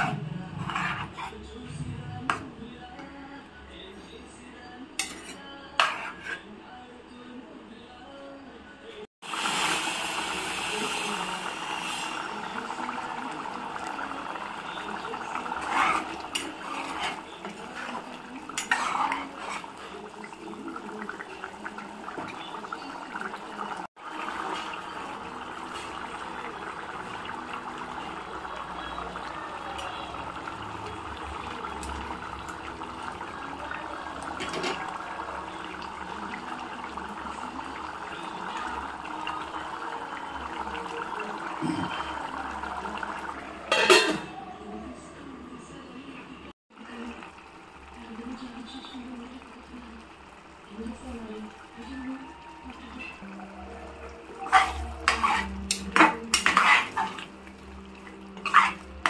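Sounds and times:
spoon scraping and clinking pot: 0.0s - 1.4s, 5.0s - 6.5s, 14.9s - 22.5s, 43.7s - 44.3s, 54.4s - 57.3s, 58.0s - 59.0s
curry bubbling in a pot: 9.2s - 43.9s, 46.7s - 59.0s.

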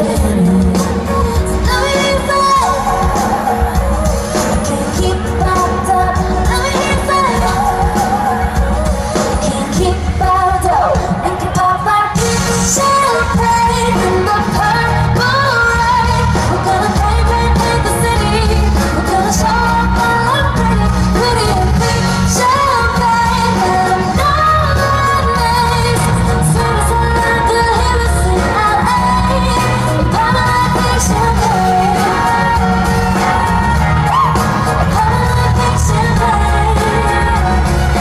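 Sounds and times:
backing track with pulsing bass: 0.0s - 38.0s
woman singing: 0.0s - 38.0s.

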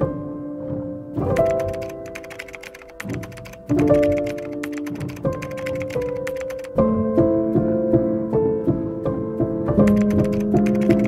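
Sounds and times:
soft background music: 0.0s - 11.0s
keyboard typing clicks: 1.3s - 6.8s, 9.8s - 11.0s.

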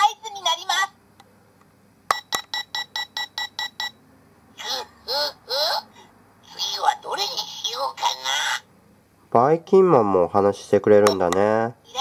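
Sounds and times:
electronic toy beeps: 2.1s - 4.0s
person speaking: 9.3s - 12.0s.

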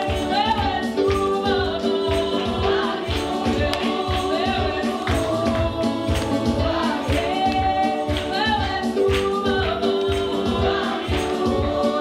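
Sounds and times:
instrumental accompaniment: 0.0s - 12.0s
women singing gospel song: 0.0s - 12.0s.

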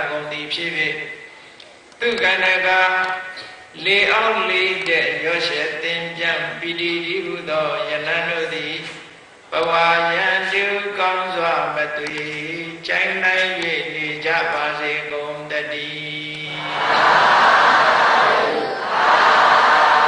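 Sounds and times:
person chanting through microphone: 2.0s - 20.0s
crowd answering together: 16.5s - 20.0s.

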